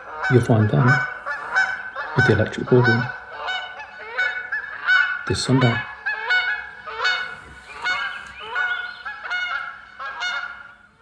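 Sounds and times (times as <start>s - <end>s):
geese honking: 0.0s - 11.0s.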